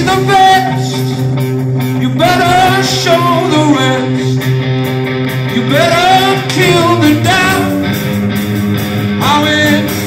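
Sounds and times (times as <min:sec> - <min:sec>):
rock band playing loud: 0:00.0 - 0:10.0.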